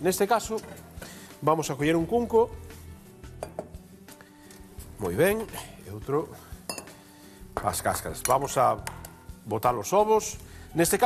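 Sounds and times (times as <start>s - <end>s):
soft background music: 0.0s - 11.0s
metal bowl clinking: 6.7s - 7.0s.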